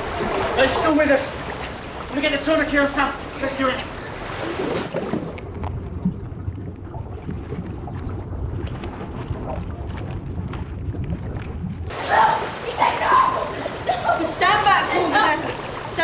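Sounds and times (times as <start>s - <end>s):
faint clicks underwater: 5.0s - 11.8s
muffled underwater rumble: 5.0s - 11.9s
woman's voice: 12.1s - 16.0s.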